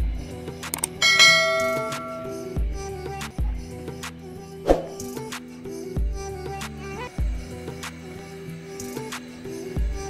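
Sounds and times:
background music: 0:00.0 - 0:10.0
bell chime ringing: 0:01.0 - 0:02.5.

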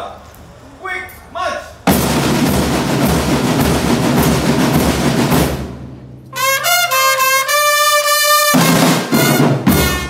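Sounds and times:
marching band drums and brass: 0:01.8 - 0:10.0.

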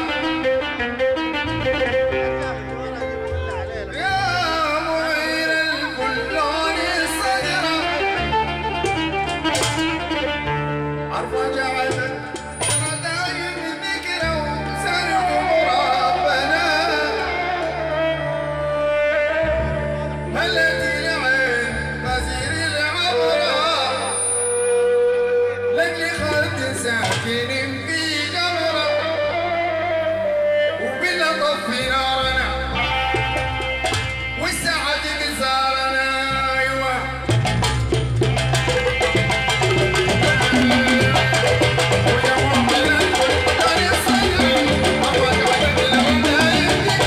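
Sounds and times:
electronic keyboard accompaniment: 0:00.0 - 0:47.0
man singing through microphone: 0:01.9 - 0:08.7, 0:10.9 - 0:37.4, 0:39.9 - 0:47.0
frame drums beaten fast: 0:37.3 - 0:47.0.

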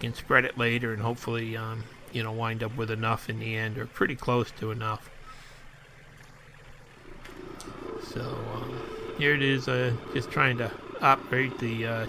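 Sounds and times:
distant diesel tractor engine: 0:07.0 - 0:12.0.

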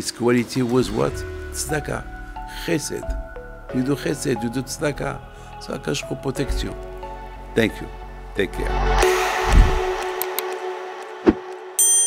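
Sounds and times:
bright bell ding: 0:11.8 - 0:12.0.

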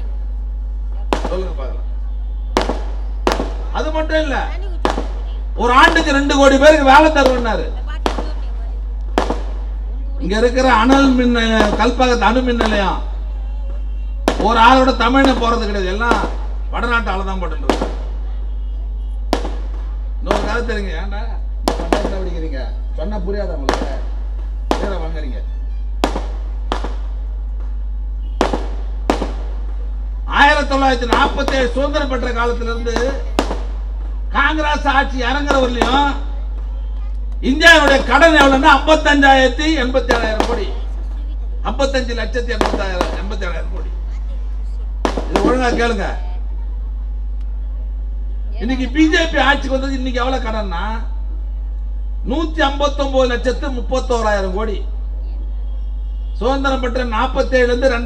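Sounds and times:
public address hum: 0:00.0 - 0:58.0
firecracker bangs: 0:01.0 - 0:10.0, 0:10.7 - 0:16.8, 0:17.5 - 0:21.0, 0:21.6 - 0:22.7, 0:23.6 - 0:41.2, 0:42.4 - 0:44.0, 0:44.9 - 0:46.2
man speaking over loudspeaker: 0:01.2 - 0:01.8, 0:03.7 - 0:04.7, 0:05.5 - 0:07.9, 0:10.2 - 0:13.2, 0:14.3 - 0:17.8, 0:20.2 - 0:24.0, 0:24.7 - 0:25.5, 0:30.2 - 0:33.3, 0:34.3 - 0:36.3, 0:37.4 - 0:41.0, 0:41.6 - 0:44.0, 0:45.3 - 0:46.2, 0:48.6 - 0:51.2, 0:52.2 - 0:54.9, 0:56.4 - 0:58.0
sharp cracks: 0:02.5 - 0:04.1, 0:04.8 - 0:09.9, 0:10.8 - 0:13.3, 0:14.2 - 0:16.7, 0:17.6 - 0:18.3, 0:19.2 - 0:20.8, 0:21.6 - 0:22.5, 0:23.6 - 0:25.2, 0:26.0 - 0:41.2, 0:42.4 - 0:44.0, 0:44.9 - 0:45.8.

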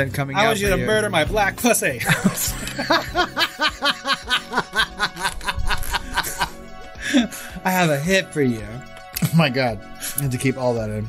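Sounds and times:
quiet background music: 0:00.0 - 0:11.0
man laughing hard: 0:02.0 - 0:07.3.

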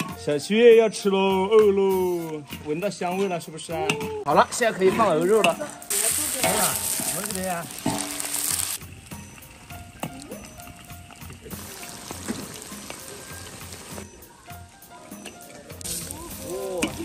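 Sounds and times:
meat sizzling in a wok: 0:05.2 - 0:17.0.

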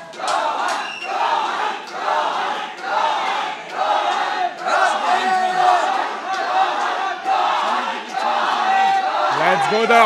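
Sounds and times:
crowd chanting: 0:00.0 - 0:10.0.

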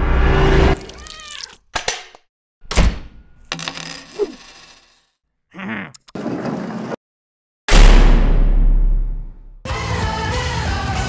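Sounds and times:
cartoon cat meow falling in pitch: 0:00.8 - 0:01.6
sharp metallic clinks: 0:03.5 - 0:05.0
loud deep thud: 0:07.7 - 0:09.4.

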